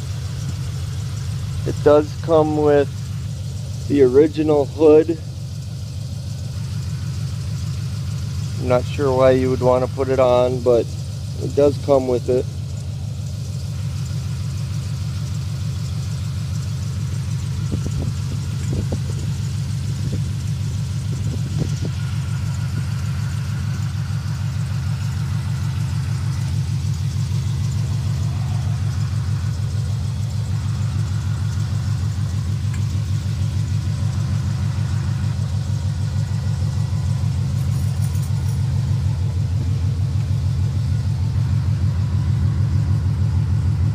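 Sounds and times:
car engine idling: 0.0s - 43.9s.

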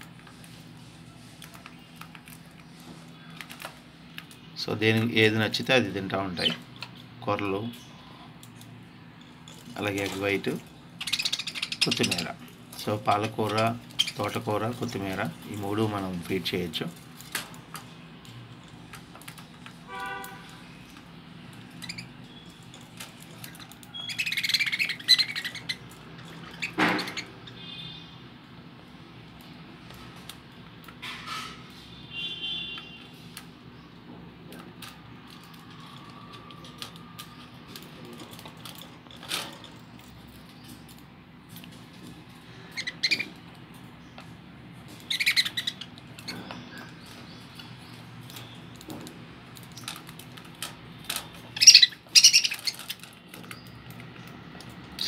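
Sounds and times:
budgerigars chirping: 11.0s - 12.4s, 23.4s - 28.0s, 42.7s - 43.3s, 45.1s - 47.1s, 51.5s - 52.9s.

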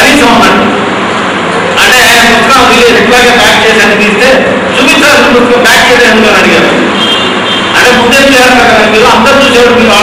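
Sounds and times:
man speaking into microphone: 0.0s - 0.9s, 1.7s - 7.0s, 7.7s - 10.0s.

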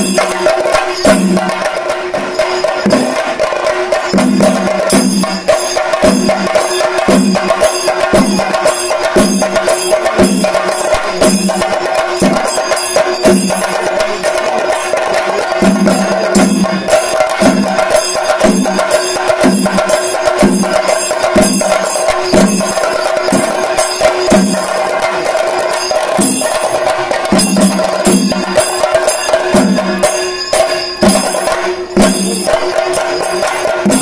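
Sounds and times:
drums beaten with sticks: 0.0s - 34.0s
steady ringing tone: 0.0s - 34.0s.

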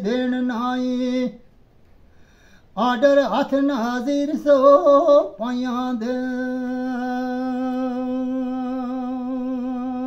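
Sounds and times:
man singing long note: 2.8s - 10.0s.

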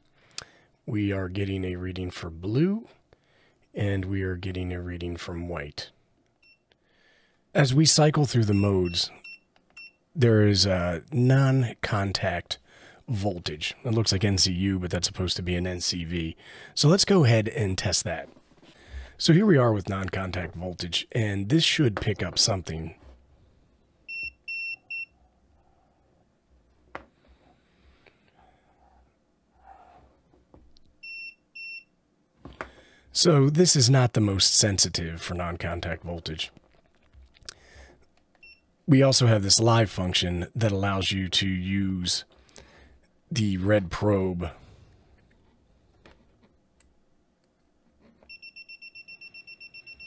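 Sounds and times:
faint handling sounds: 17.8s - 19.2s
multimeter high-pitched beeps: 48.3s - 50.0s.

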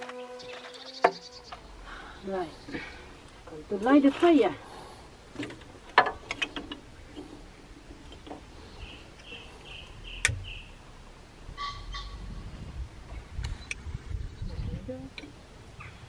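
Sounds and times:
birds chirping: 0.0s - 12.5s, 13.1s - 16.0s
kindling sticks knocking: 5.4s - 7.3s.

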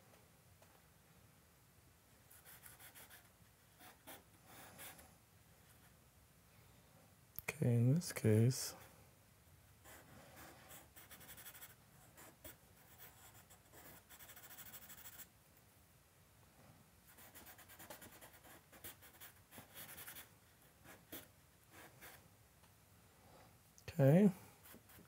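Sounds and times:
charcoal scratching on paper: 9.9s - 15.3s, 17.1s - 20.3s.

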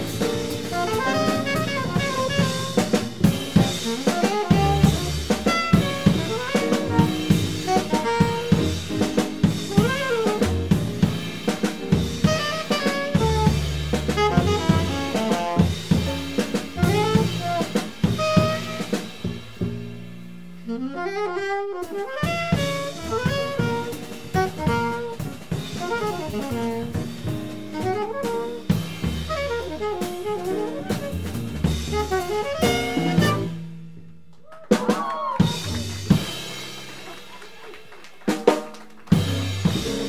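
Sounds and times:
alto saxophone playing: 0.0s - 19.6s, 20.5s - 33.7s
double bass: 0.0s - 34.3s, 35.6s - 36.9s, 39.1s - 40.0s
drum kit: 0.0s - 40.0s.

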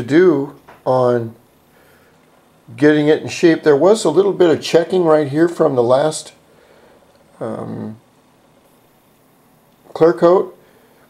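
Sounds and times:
man's voice: 7.4s - 8.0s.

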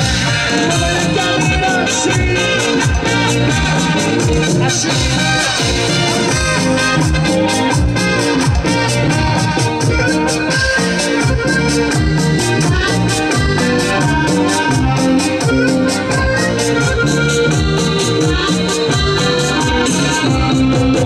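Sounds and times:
drums beat: 0.0s - 21.0s
electric bass: 0.0s - 21.0s
organ keyboard melody: 0.0s - 21.0s.

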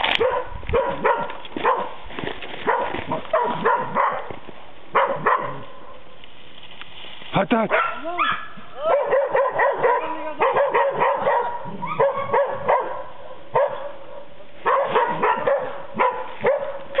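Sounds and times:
young dogs barking and yelping: 0.0s - 6.0s, 7.7s - 17.0s.

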